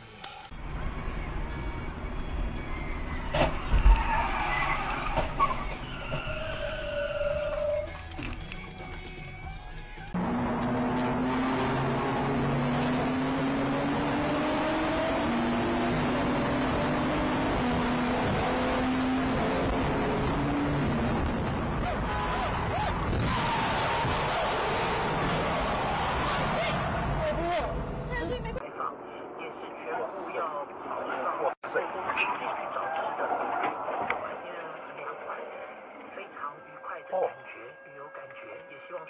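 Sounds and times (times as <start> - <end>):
tyres skidding: 0.6 - 8.8, 10.1 - 28.6
tyre squeal: 2.6 - 8.0
car engine running hard: 10.1 - 28.6.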